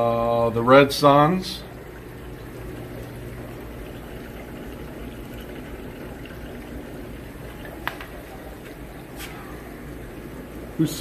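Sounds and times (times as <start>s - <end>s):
aquarium filter bubbling: 0.0s - 11.0s.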